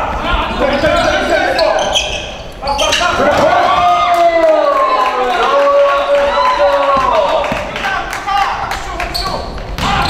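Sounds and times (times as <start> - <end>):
players' voices and calls: 0.0 - 10.0.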